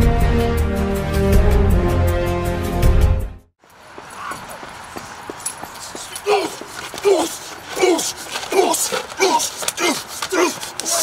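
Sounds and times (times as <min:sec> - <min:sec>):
outdoor background hiss: 0:03.6 - 0:11.0
scuffing footsteps on pavement: 0:03.6 - 0:11.0.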